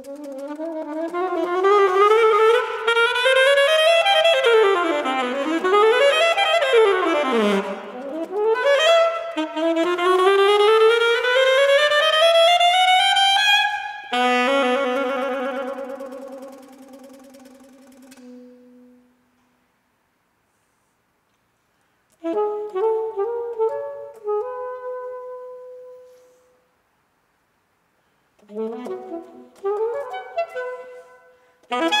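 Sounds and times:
solo saxophone playing: 0.0s - 17.0s, 17.6s - 19.2s, 22.2s - 26.4s, 28.4s - 32.0s.

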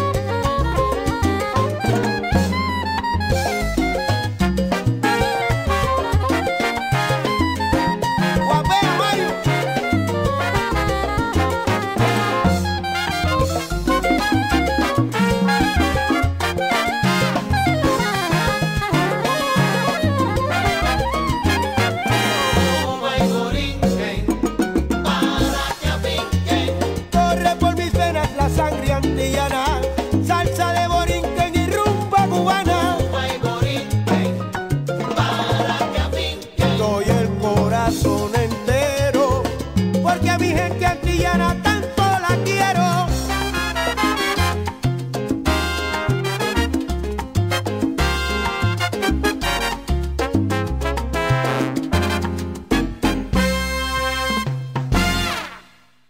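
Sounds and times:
bass line: 0.0s - 56.0s
salsa band playing: 0.0s - 56.0s.

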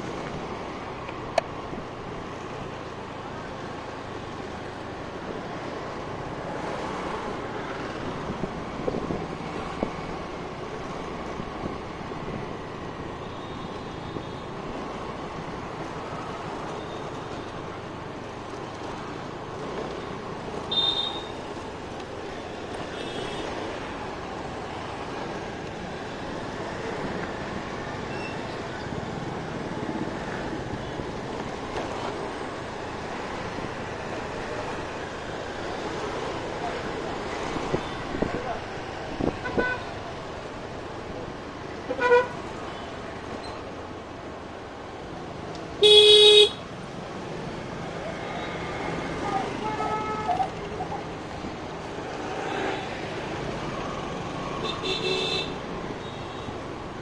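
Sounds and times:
passing traffic: 0.0s - 57.0s.

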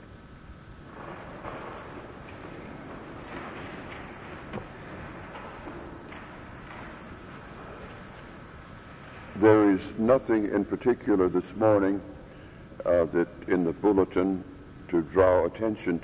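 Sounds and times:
faint rustling: 0.0s - 11.0s
steady hiss and low rumble: 0.0s - 16.0s
soft knocks: 0.9s - 8.6s.

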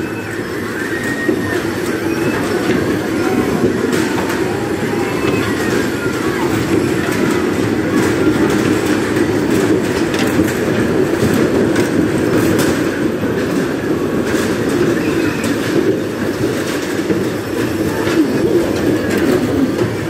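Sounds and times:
bumper cars rumbling hum: 0.0s - 20.0s.

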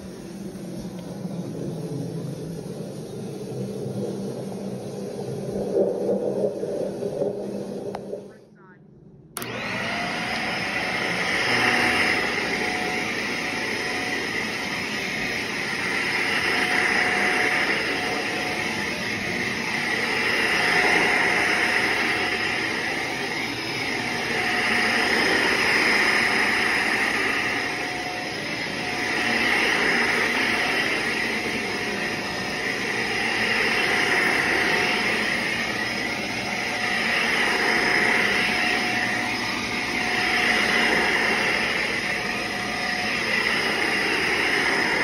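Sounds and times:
vacuum cleaner running: 0.0s - 8.4s, 9.4s - 45.0s.

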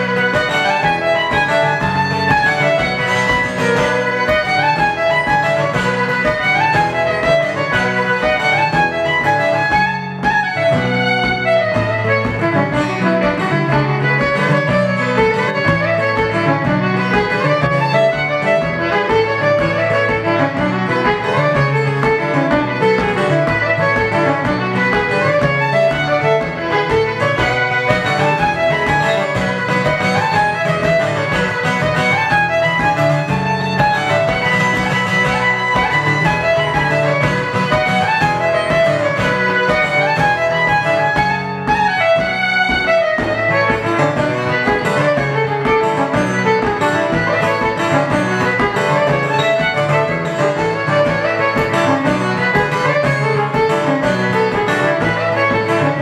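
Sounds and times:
acoustic guitar strumming chords: 0.0s - 56.0s
fiddle playing fast melody: 0.0s - 56.0s.

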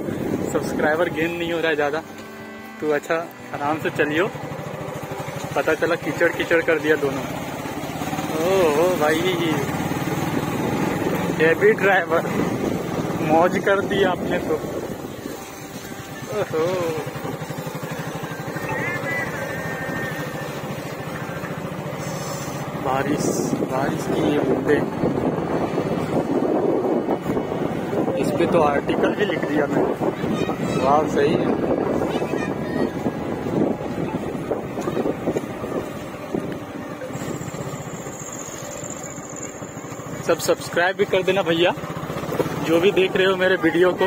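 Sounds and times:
motorcycle engine running: 0.0s - 44.0s.

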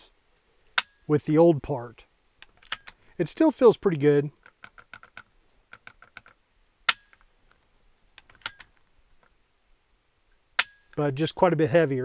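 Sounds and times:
rifle action clicking: 8.2s - 8.8s.

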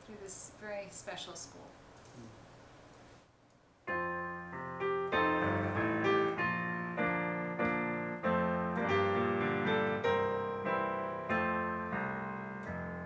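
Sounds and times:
electronic keyboard playing a hymn: 3.9s - 13.0s.

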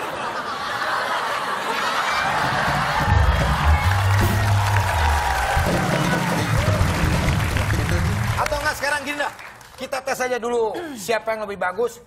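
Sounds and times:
studio audience noise: 0.0s - 10.5s
band music: 2.4s - 8.4s.

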